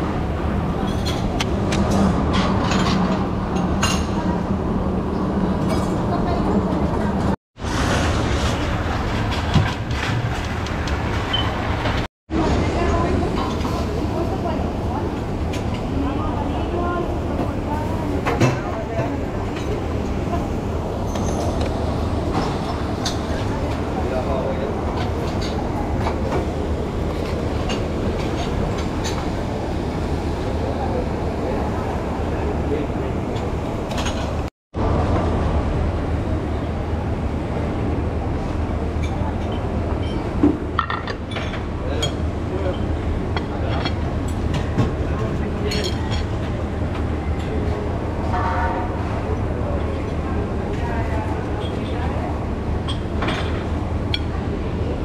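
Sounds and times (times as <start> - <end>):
low rumble of indoor market: 0.0 - 55.0
dishes clinking: 39.0 - 44.9, 45.6 - 46.5, 52.8 - 54.3.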